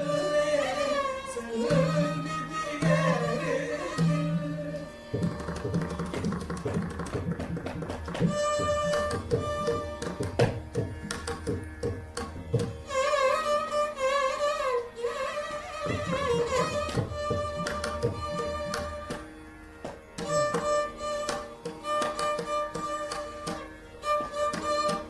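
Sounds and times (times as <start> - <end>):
mridangam strokes: 0.0 - 25.0
violin melody: 0.0 - 25.0.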